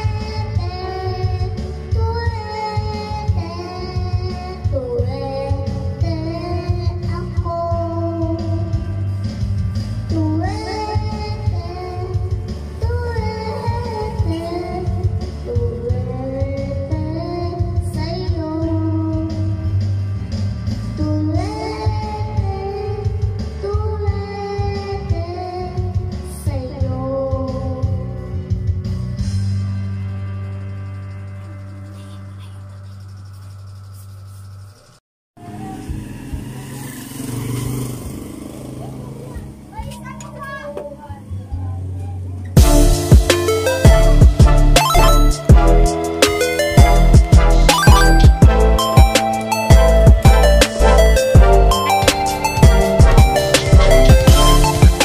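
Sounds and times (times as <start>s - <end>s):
child singing into microphone: 0.0s - 9.0s, 10.0s - 19.6s, 20.9s - 28.3s
motorcycle engine humming: 35.4s - 39.7s
backing track with steady beat: 42.6s - 55.0s.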